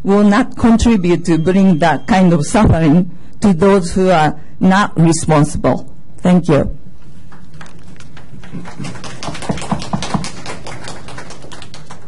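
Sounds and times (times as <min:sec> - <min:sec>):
room hum: 0:00.0 - 0:12.0
people clapping: 0:07.3 - 0:12.0.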